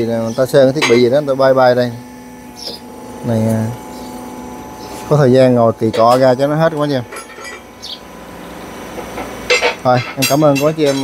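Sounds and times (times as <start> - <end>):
metallic clinking on engine casing: 0.7 - 1.2, 5.8 - 8.0, 9.0 - 11.0.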